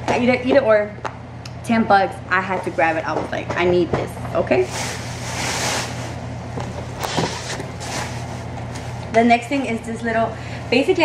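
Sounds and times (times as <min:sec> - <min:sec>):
steady low hum: 0:00.0 - 0:11.0
plastic basket rustling and scraping: 0:04.6 - 0:06.2, 0:06.9 - 0:09.0.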